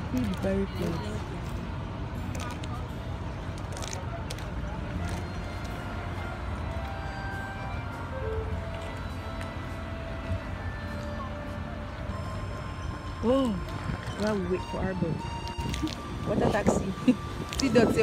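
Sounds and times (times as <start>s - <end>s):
soft background music: 0.0s - 18.0s.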